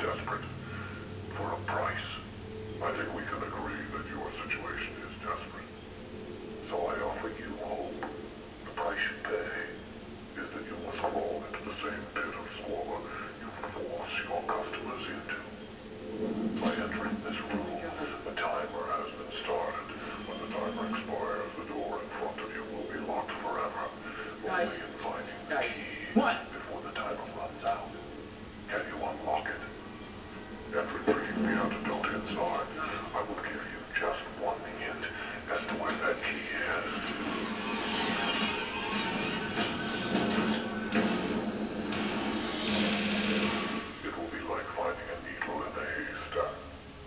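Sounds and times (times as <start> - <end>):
low steady drone: 0.0 - 46.8
dense noisy texture: 0.0 - 47.0
man speaking: 1.3 - 5.7, 6.6 - 8.1, 8.7 - 9.8, 10.4 - 15.6, 16.6 - 28.0, 28.7 - 29.8, 30.7 - 37.0, 44.0 - 46.7
high falling screech: 37.2 - 43.9.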